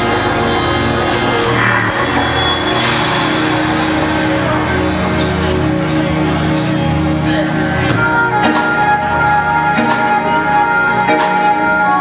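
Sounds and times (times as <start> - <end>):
bass notes: 0.0 - 12.0
live band playing: 0.0 - 12.0.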